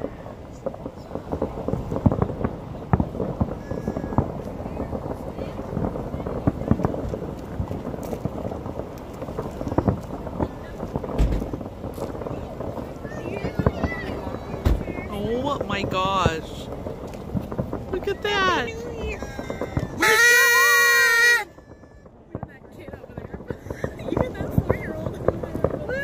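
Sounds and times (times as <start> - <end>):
distant fireworks popping and banging: 0.0 - 26.0
loud firework booms: 0.0 - 26.0.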